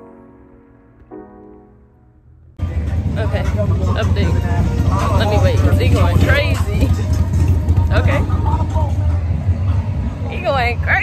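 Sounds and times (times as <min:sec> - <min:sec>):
low rumble: 0:02.1 - 0:11.0.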